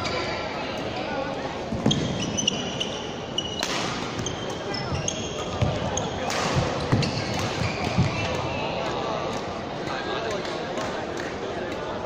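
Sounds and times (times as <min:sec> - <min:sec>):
background voices in hall: 0:00.0 - 0:12.0.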